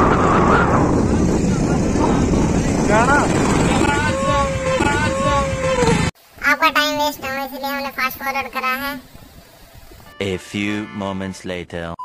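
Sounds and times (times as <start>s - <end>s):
wind buffeting microphone: 0.0s - 6.1s, 8.1s - 10.1s
drawn-out voiced sounds: 2.2s - 9.1s
person calling out: 3.9s - 9.0s.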